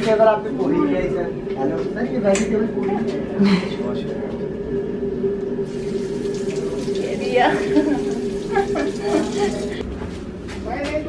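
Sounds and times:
steady hum: 0:00.0 - 0:11.0
water running from tap: 0:05.7 - 0:09.8.

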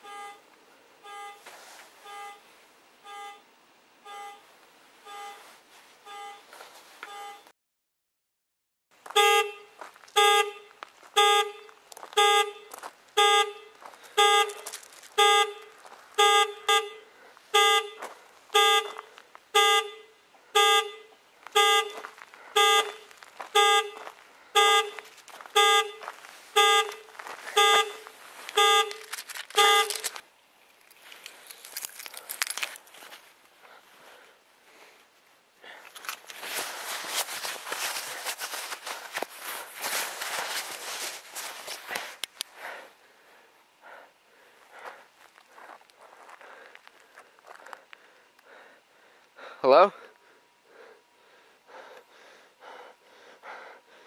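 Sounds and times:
car alarm horn pulsing: 0:00.0 - 0:07.5, 0:09.1 - 0:30.2.

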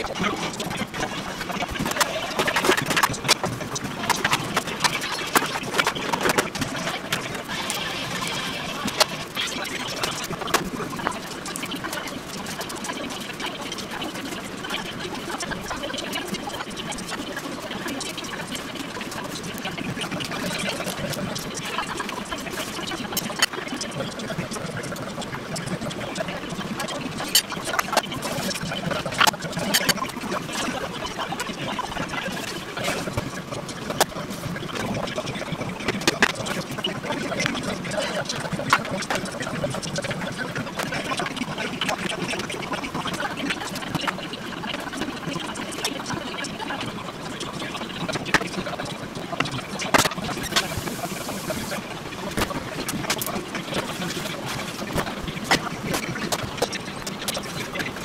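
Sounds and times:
faint voices: 0:00.0 - 0:58.0
noisy background: 0:00.0 - 0:58.0.

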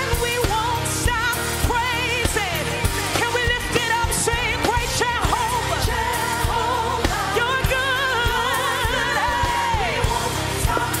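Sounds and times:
band accompaniment with steady beat: 0:00.0 - 0:11.0
woman singing gospel song: 0:00.0 - 0:11.0.

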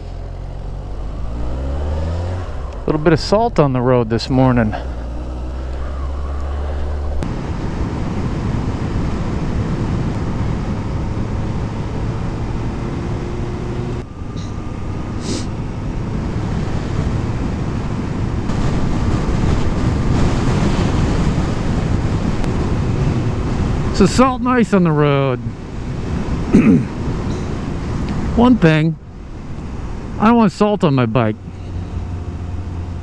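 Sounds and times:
motorcycle engine: 0:00.0 - 0:30.3, 0:31.4 - 0:33.0
wind rush on microphone: 0:05.0 - 0:30.2.

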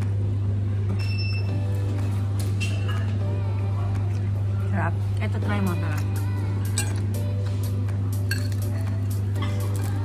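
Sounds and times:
faint background music: 0:00.0 - 0:10.0
high ringing tone: 0:01.0 - 0:01.6.

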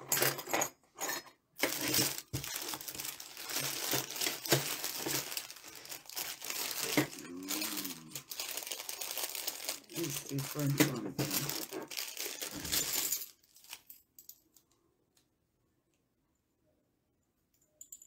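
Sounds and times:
plastic bags crinkling: 0:01.6 - 0:14.0.

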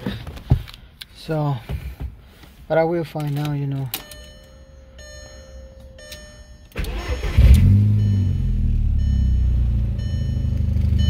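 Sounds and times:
car engine starting and idling: 0:04.0 - 0:11.0.

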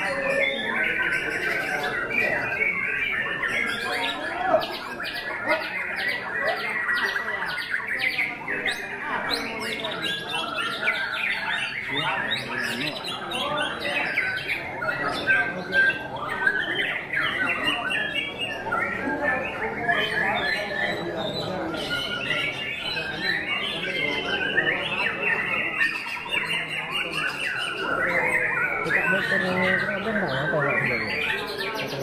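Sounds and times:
chorus of songbirds: 0:00.0 - 0:32.0.

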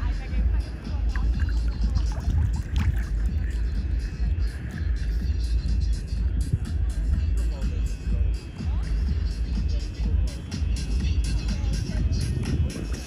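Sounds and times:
wind buffeting microphone: 0:00.0 - 0:07.4, 0:11.1 - 0:13.0
faint music: 0:00.0 - 0:13.0.

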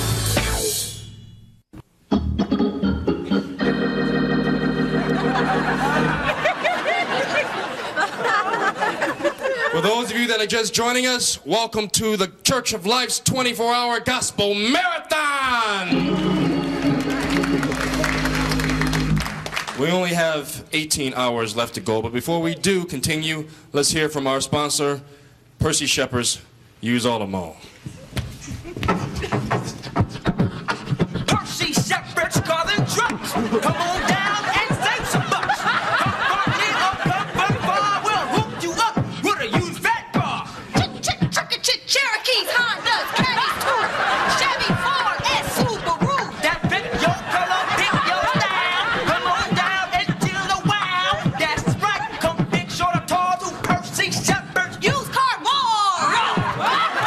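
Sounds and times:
organ chords: 0:02.0 - 0:08.5, 0:15.9 - 0:19.9, 0:33.1 - 0:39.2
beatboxing mouth clicks: 0:28.9 - 0:31.9.

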